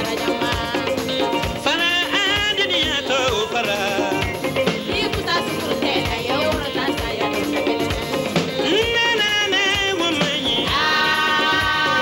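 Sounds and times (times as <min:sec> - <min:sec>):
drums: 0:00.0 - 0:12.0
electric guitar: 0:00.0 - 0:12.0
high voices singing: 0:00.0 - 0:12.0.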